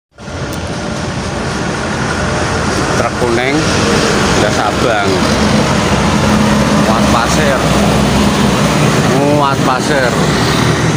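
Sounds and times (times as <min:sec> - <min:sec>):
dump truck: 0:00.2 - 0:10.9
road traffic engine rumble: 0:00.2 - 0:10.9
motorbikes: 0:02.1 - 0:10.9.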